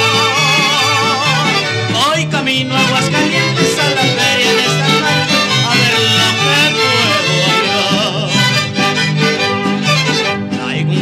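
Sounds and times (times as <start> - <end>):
bass line: 0.0 - 11.0
violins playing melody: 0.0 - 11.0.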